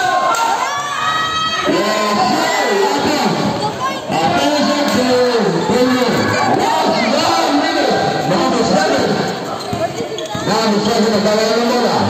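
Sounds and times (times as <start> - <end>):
crowd and player voices: 0.0 - 12.0
basketball bouncing on concrete: 9.6 - 10.9.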